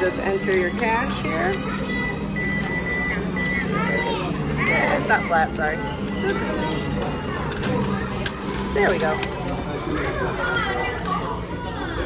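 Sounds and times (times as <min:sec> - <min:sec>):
low machine hum: 0:00.0 - 0:12.0
high electronic beep tone: 0:01.9 - 0:06.3.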